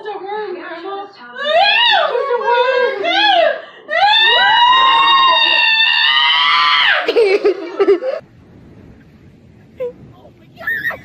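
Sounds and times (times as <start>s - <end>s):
woman screaming: 1.4s - 7.1s.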